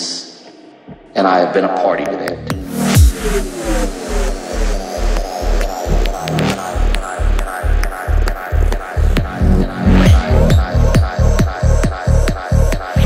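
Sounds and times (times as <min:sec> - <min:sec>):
techno kick and bass: 0:02.3 - 0:13.0
falling synth sweeps: 0:02.5 - 0:13.0.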